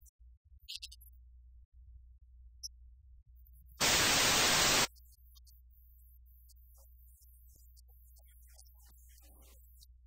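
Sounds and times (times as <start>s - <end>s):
tv static hiss: 3.8s - 4.9s.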